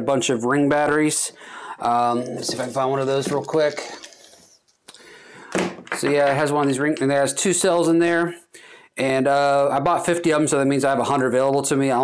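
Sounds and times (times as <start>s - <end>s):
plastic bag crinkling: 2.3s - 4.6s.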